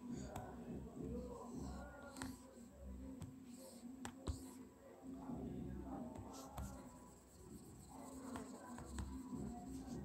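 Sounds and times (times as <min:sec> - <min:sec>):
stylus tapping and scratching on screen: 0:00.0 - 0:10.0.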